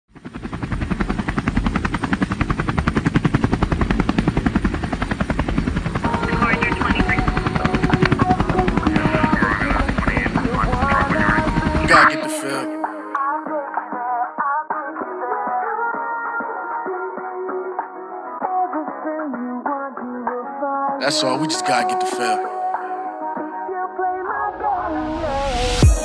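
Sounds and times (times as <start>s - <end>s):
low chopping pulse: 0.2s - 11.9s
voices: 6.0s - 13.0s, 21.0s - 22.5s.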